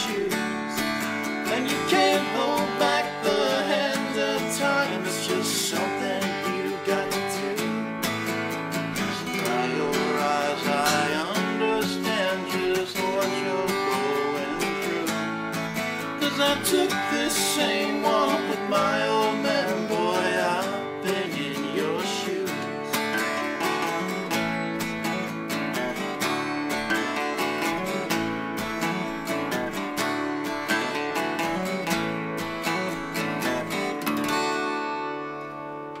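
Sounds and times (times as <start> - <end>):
acoustic guitars strummed and picked: 0.0 - 36.0.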